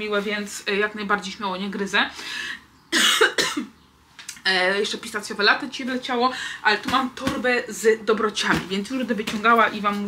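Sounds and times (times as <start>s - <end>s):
woman coughing: 2.9s - 3.8s.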